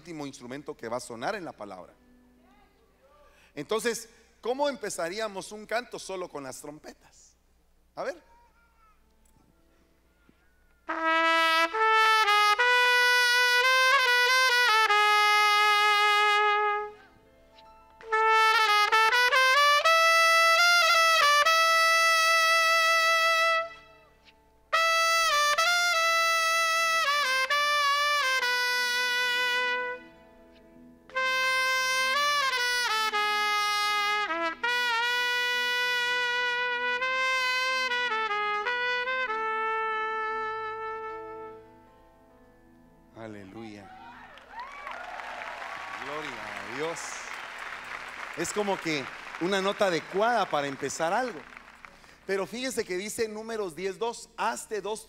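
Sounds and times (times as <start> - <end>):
solo trumpet slow melody: 10.8 - 42.1.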